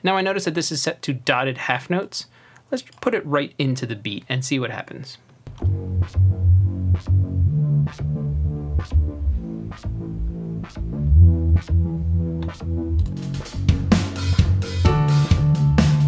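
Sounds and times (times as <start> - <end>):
distorted synth bass line: 5.5 - 14.0
electronic drum beat: 5.5 - 16.0.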